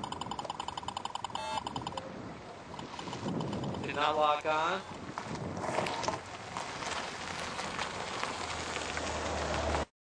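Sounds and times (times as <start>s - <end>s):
car approaching: 5.1s - 9.9s.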